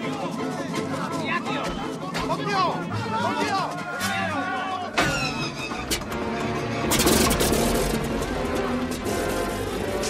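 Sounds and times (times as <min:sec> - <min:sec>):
orchestral film score: 0:00.0 - 0:10.0.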